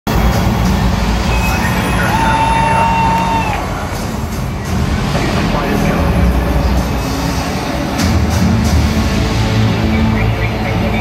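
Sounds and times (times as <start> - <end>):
crowd noise: 0.0 - 11.0
bass from loudspeakers: 0.1 - 11.0.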